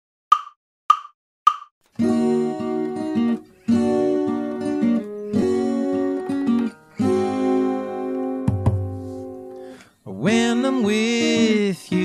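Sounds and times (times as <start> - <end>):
count-in clicks: 0.3 - 1.7
music: 2.0 - 12.0.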